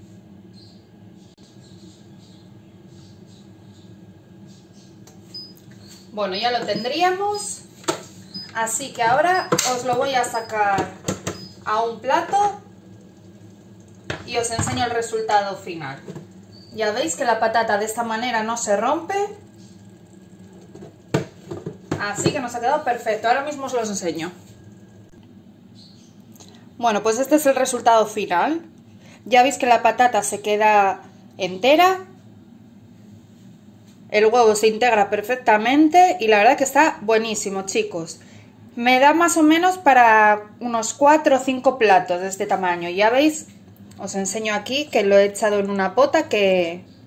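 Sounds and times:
cooking robot humming: 0.5s - 28.4s.

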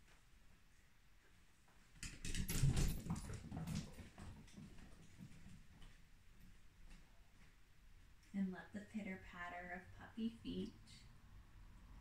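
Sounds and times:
puppy paws on floor: 1.2s - 7.6s.

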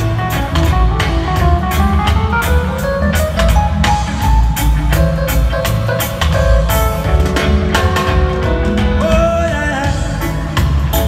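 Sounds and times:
deep bass: 0.0s - 11.0s
drums on a steady beat: 0.0s - 11.0s
guitar: 0.0s - 11.0s
live reggae band playing: 0.0s - 11.0s.

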